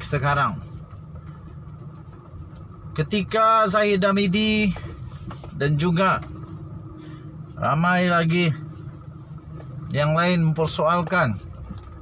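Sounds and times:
car engine humming inside cabin: 0.0 - 12.0.

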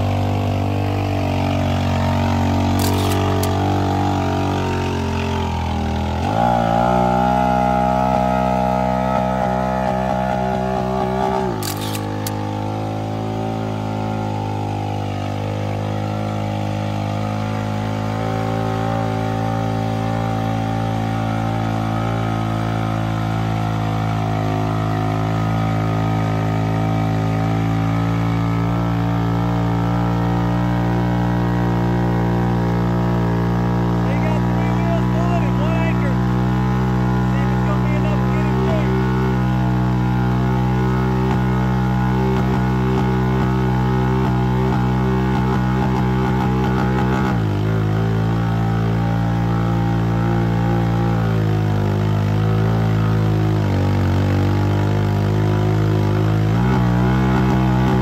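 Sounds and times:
atv engine revving under load: 0.0 - 58.0.

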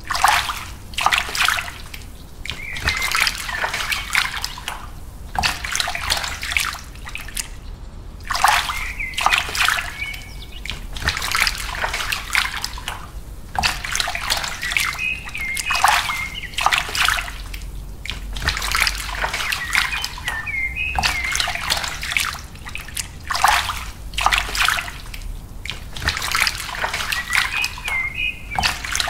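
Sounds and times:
water splashing into puddle: 0.0 - 7.6, 8.2 - 29.0.

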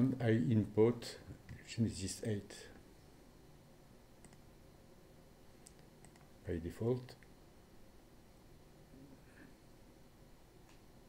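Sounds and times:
faint computer mouse clicks: 4.2 - 4.4, 5.6 - 6.3.

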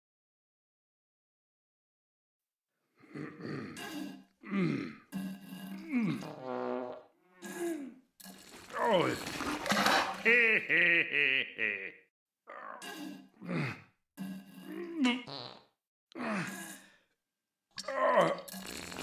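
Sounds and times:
cartoon voice grunting and groaning: 16.2 - 16.9, 17.8 - 18.5.

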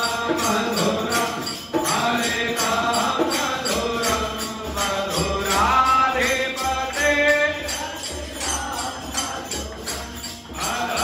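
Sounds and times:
devotional chant singing: 0.0 - 11.0
jingling percussion: 0.0 - 11.0.

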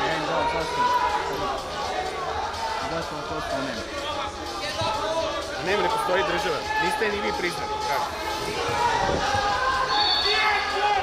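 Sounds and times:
voices in a sports hall: 0.0 - 11.0.

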